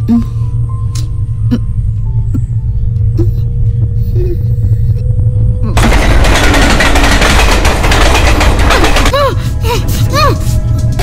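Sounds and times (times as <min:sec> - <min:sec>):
low rumble: 0:00.0 - 0:11.0
dense rapid crackling: 0:05.8 - 0:09.3.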